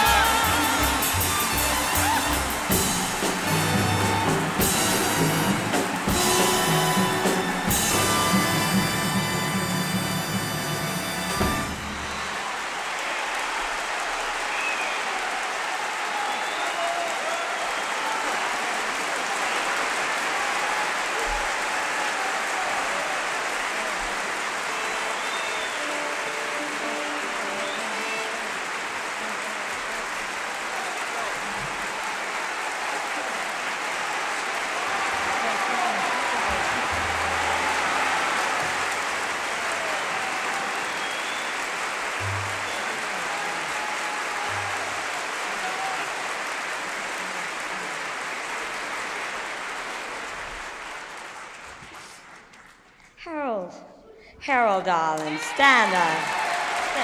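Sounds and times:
faint instrument notes: 0.0s - 12.4s
audience applauding and cheering: 0.0s - 53.2s, 54.9s - 57.0s.

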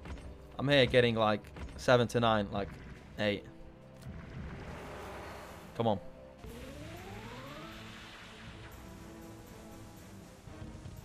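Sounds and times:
slot game music: 0.1s - 11.0s
rising tone: 6.4s - 9.7s.

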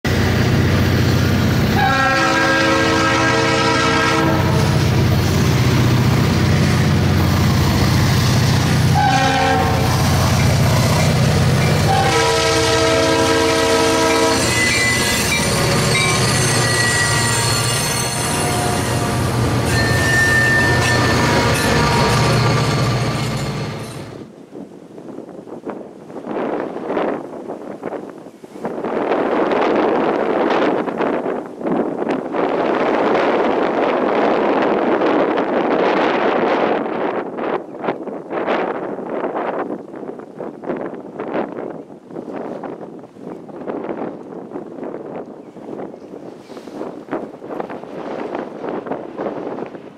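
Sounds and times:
diesel locomotive engines passing: 0.1s - 24.3s
train air horn blasts: 1.7s - 4.9s, 8.8s - 10.2s, 11.7s - 22.9s.

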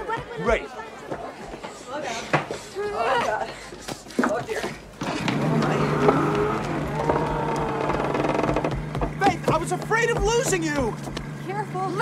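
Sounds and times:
boat engine humming: 5.1s - 12.0s.

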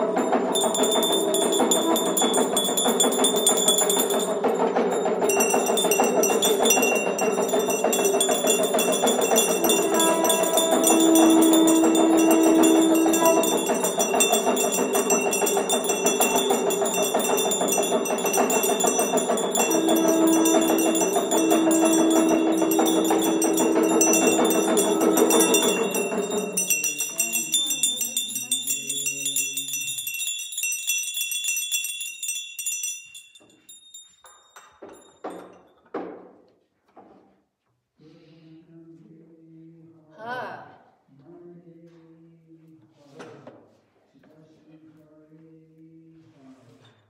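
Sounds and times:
temple bells ringing: 0.0s - 35.2s
long held low tone: 5.3s - 29.9s.

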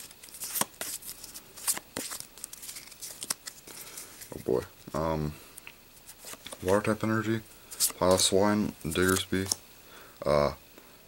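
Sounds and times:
trading cards shuffled by hand: 0.0s - 5.0s, 6.0s - 9.6s.

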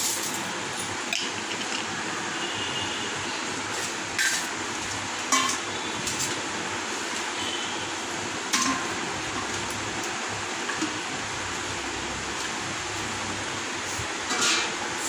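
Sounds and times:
steel bowl clinking on countertop: 5.3s - 5.6s.

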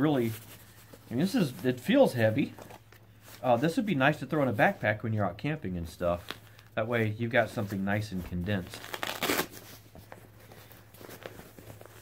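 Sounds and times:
soft fabric rustling: 0.0s - 12.0s
fabric ripping rustle: 7.5s - 12.0s.

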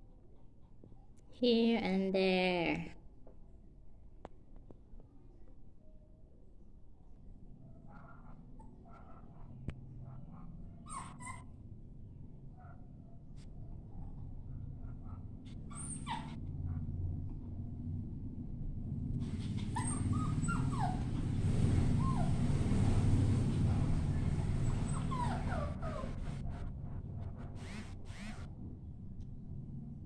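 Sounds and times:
puppy whimpering: 10.8s - 11.6s, 15.5s - 16.4s, 19.4s - 21.2s, 22.0s - 22.4s, 24.2s - 26.4s
noisy rustle: 18.8s - 28.7s.

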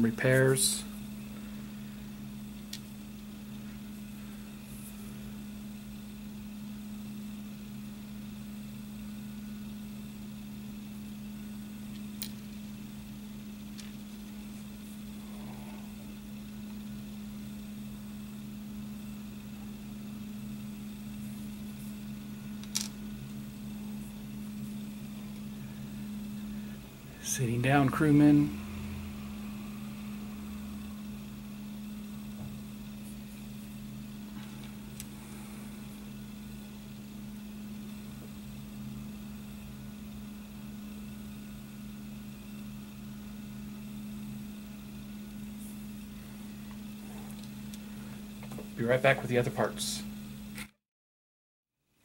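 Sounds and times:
low mechanical hum: 0.0s - 50.8s.

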